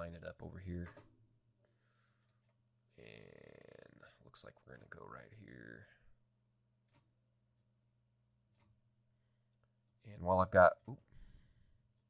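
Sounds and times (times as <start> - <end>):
computer mouse clicks: 2.0 - 2.6.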